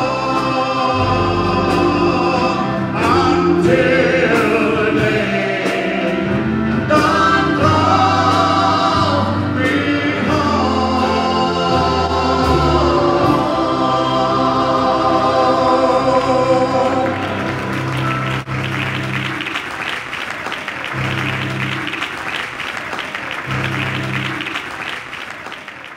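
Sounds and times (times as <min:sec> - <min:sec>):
voices singing gospel: 0:00.0 - 0:18.4
drums: 0:00.0 - 0:19.7
keyboard: 0:00.0 - 0:25.9.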